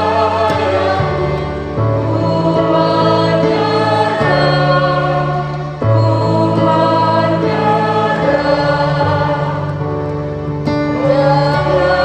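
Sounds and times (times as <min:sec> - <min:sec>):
congregation singing a hymn: 0:00.0 - 0:12.0
electronic keyboard chords: 0:00.0 - 0:12.0.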